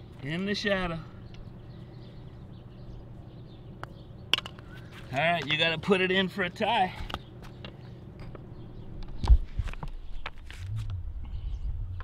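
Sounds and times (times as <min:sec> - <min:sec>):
steady low hum: 0:00.0 - 0:12.0
faint bird chirps: 0:01.0 - 0:05.1.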